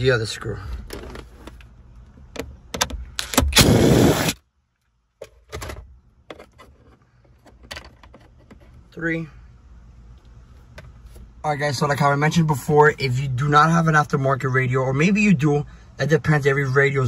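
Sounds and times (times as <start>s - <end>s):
loud rasping burst: 3.2s - 4.4s.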